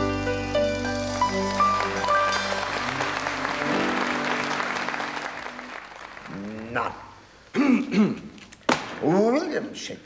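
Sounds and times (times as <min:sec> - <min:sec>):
song ending on held chord: 0:00.0 - 0:05.3
audience applauding: 0:00.9 - 0:06.8.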